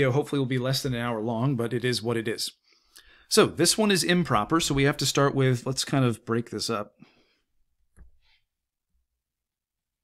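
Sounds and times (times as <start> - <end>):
faint breath: 2.6 - 3.3, 7.0 - 7.5.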